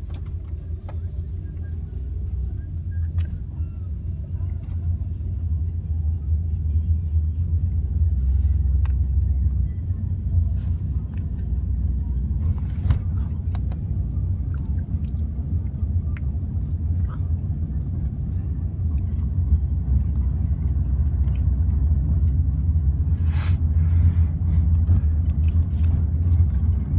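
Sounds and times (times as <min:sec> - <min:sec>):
car road and engine rumble: 0:00.0 - 0:26.9.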